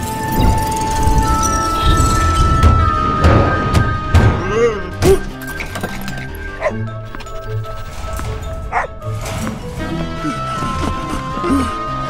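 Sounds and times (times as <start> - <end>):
background music: 0.0 - 12.0
dog barking: 8.7 - 8.9.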